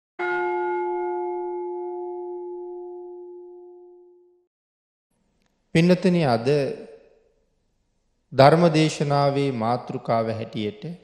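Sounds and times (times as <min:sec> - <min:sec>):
bell-like chime ringing: 0:00.2 - 0:04.4.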